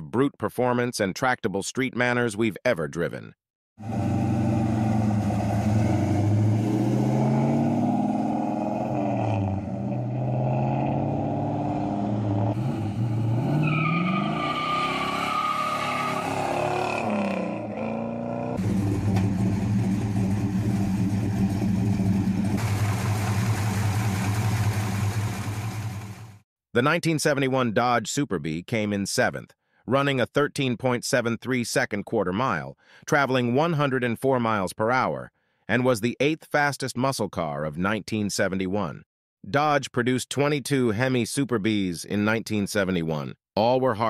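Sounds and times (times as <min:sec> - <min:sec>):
car engine revving: 0:03.8 - 0:26.4.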